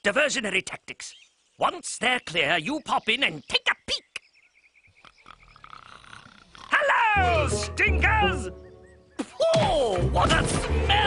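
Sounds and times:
soft rasping snoring: 5.3 - 6.7.

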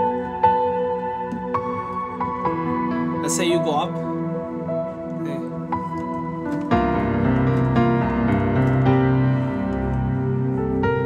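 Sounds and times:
digital piano jazz chords: 0.0 - 11.0.

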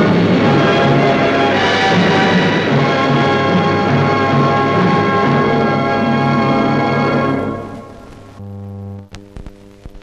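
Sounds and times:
music: 0.0 - 8.4
electrical hum: 2.3 - 10.0.

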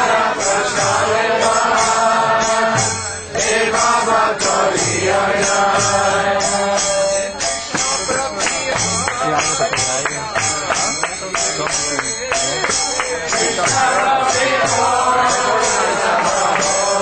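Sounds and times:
voices chanting in held notes: 0.0 - 9.4, 13.2 - 17.0.

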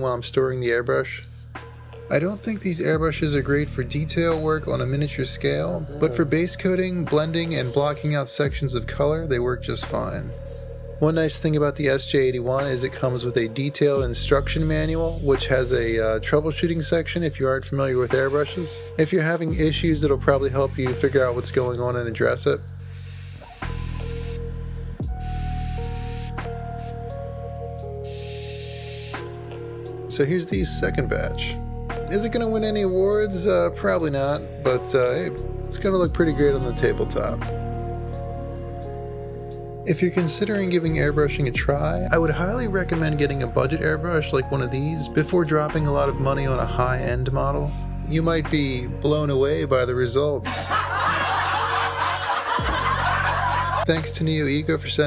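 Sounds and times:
background music with held notes: 0.0 - 55.0
airbrush spraying hiss: 1.1 - 4.9, 7.3 - 8.6, 9.7 - 21.8, 22.7 - 29.6
laughter: 50.4 - 54.0.

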